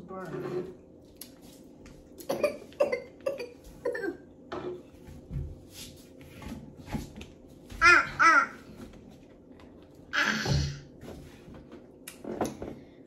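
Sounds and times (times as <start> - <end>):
person coughing: 2.2 - 4.2.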